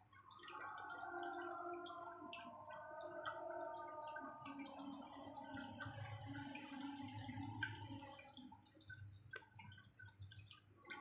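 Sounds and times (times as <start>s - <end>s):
water drips: 0.0s - 11.0s
water trickling from a pipe: 0.0s - 11.0s.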